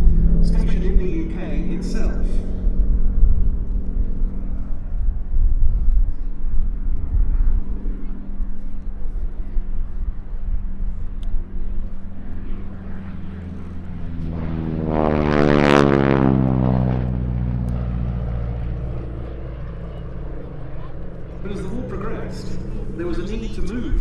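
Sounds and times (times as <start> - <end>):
propeller aircraft flypast: 0.0 - 24.0.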